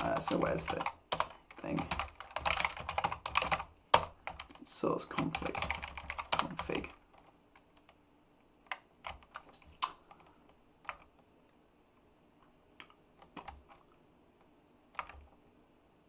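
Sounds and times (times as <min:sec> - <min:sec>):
computer keyboard keystrokes: 0:00.0 - 0:04.6, 0:05.2 - 0:08.0, 0:08.7 - 0:11.2, 0:12.8 - 0:13.8, 0:14.9 - 0:15.3.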